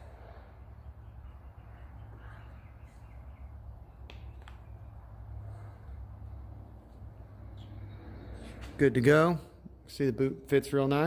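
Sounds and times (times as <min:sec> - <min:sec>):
steady low hum: 0:00.0 - 0:10.5.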